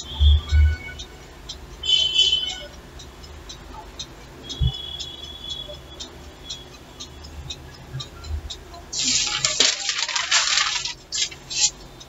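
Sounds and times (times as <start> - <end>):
paper rustling and crinkling: 9.0 - 10.9.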